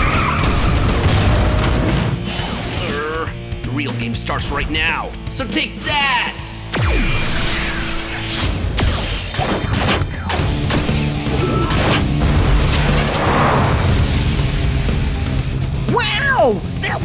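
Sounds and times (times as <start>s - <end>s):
cartoon impacts and explosions: 0.0s - 2.5s, 6.7s - 14.6s
dramatic background music: 0.0s - 17.0s.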